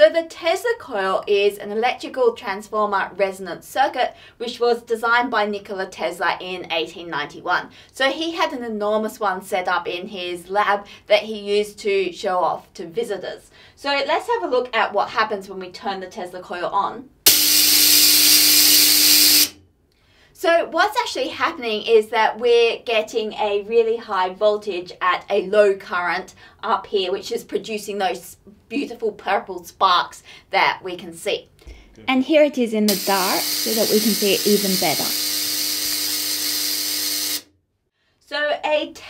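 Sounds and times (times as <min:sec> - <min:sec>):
steady hum: 0:17.3 - 0:19.5, 0:31.9 - 0:37.4
tesla coil hissing buzz: 0:17.3 - 0:19.5, 0:32.9 - 0:37.4.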